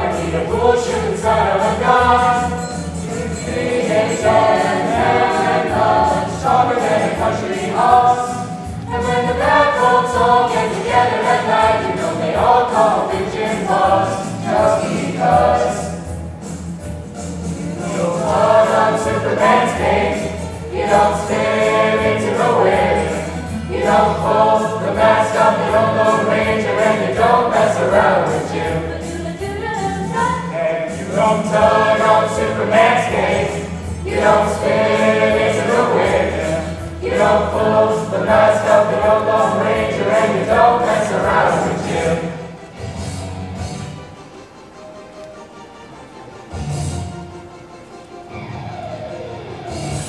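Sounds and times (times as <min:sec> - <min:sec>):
choir singing: 0:00.0 - 0:16.2, 0:17.4 - 0:43.1.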